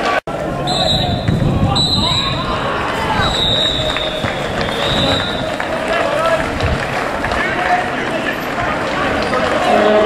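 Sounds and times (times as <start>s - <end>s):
people calling out and talking: 0.0s - 10.0s.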